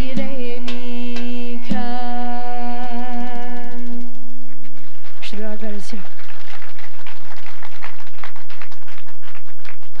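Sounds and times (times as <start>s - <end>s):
audience applauding: 4.5s - 10.0s.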